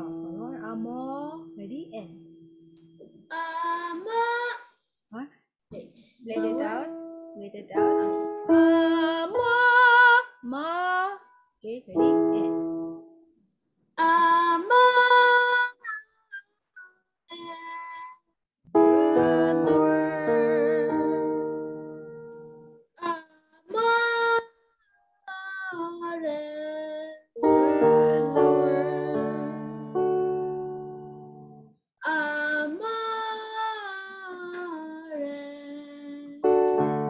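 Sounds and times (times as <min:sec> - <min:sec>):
piano chord: 0:00.0 - 0:03.0, 0:06.3 - 0:10.0, 0:12.0 - 0:13.1, 0:18.8 - 0:22.7, 0:27.4 - 0:31.7, 0:36.4 - 0:37.0
woman and girl singing warm-ups: 0:07.8 - 0:11.2, 0:18.8 - 0:21.5, 0:27.4 - 0:29.8.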